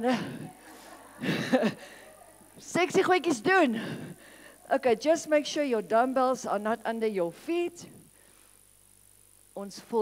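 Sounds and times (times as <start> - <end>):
speech: 2.2 - 3.8, 4.7 - 7.9, 9.6 - 10.0.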